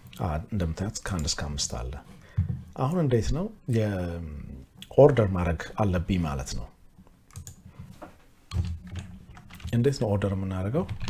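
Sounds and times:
computer keyboard keystrokes: 0:07.3 - 0:07.6.

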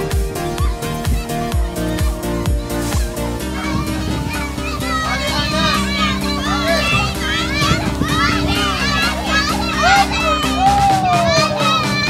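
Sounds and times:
children calling and chattering: 0:00.0 - 0:12.0
music with held tones: 0:00.0 - 0:12.0.

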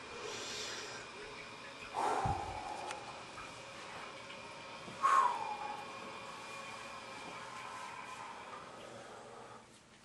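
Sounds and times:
faint high whine: 0:00.0 - 0:09.7.

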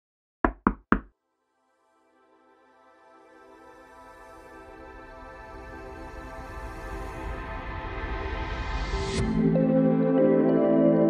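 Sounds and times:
knocking on door: 0:00.5 - 0:01.1.

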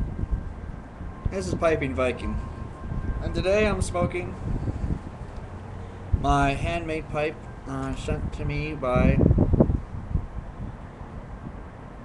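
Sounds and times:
breath buffeting microphone: 0:04.4 - 0:06.3.

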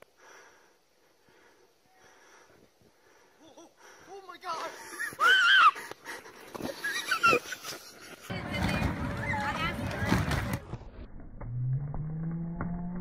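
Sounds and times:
person yelling and shrieking: 0:04.4 - 0:05.8.

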